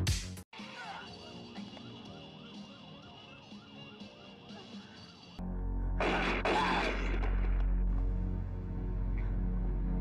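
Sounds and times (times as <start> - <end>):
police siren yelping: 1.2 - 4.5.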